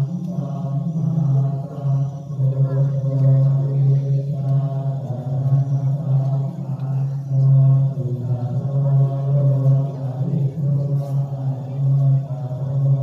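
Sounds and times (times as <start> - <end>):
monotone chanting: 0.0 - 13.0.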